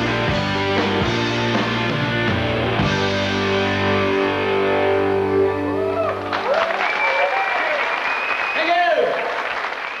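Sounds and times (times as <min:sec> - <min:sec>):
rock band chord with guitar: 0:00.0 - 0:05.8
audience applauding and cheering: 0:05.4 - 0:10.0.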